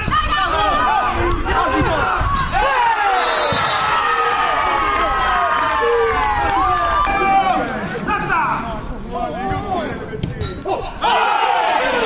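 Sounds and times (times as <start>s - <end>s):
people shouting and cheering: 0.0s - 10.0s, 10.6s - 12.0s
long falling shout: 1.6s - 7.7s.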